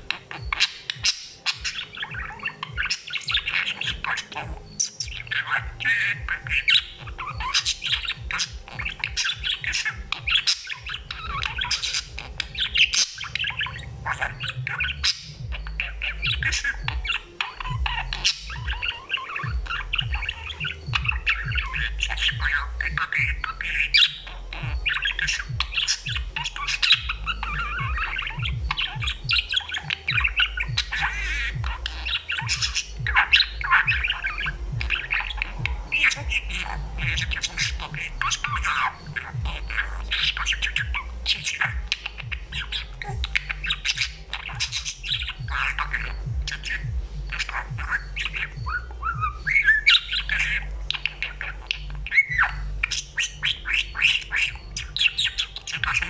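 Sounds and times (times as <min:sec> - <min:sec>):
budgerigar warbling and chattering: 0:00.0 - 0:56.0.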